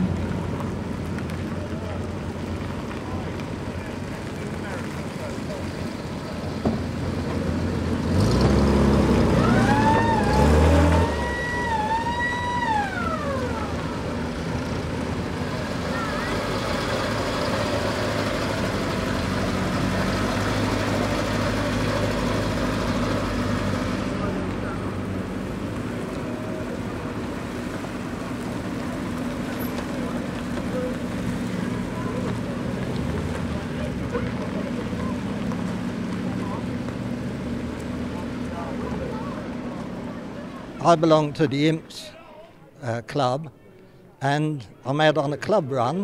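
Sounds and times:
vehicle engines driving by: 0.0 - 46.0.

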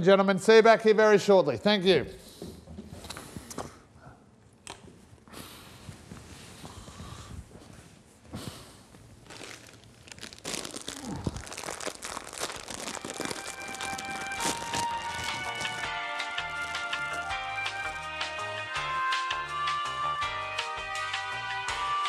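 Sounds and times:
foil packet crinkling: 9.2 - 17.4
packet being torn open: 9.3 - 17.3
music: 12.8 - 22.0.

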